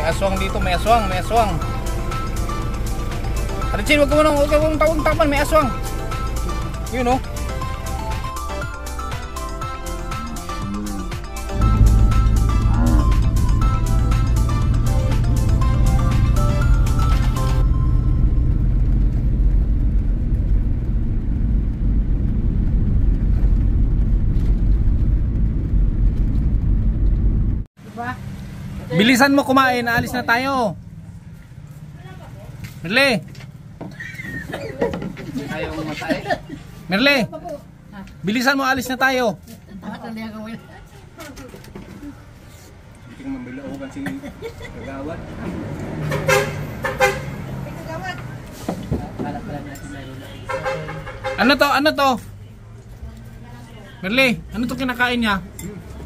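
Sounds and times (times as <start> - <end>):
car cabin road and engine rumble: 0.0 - 10.5, 11.2 - 38.9
car horn toots: 46.0 - 47.4, 50.3 - 51.8.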